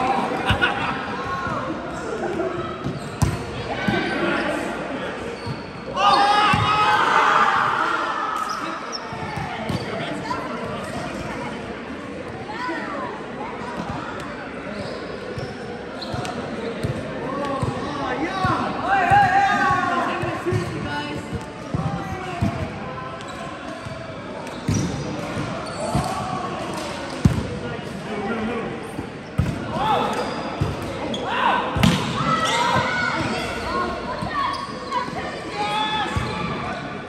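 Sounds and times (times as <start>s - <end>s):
players shouting: 5.9s - 8.6s.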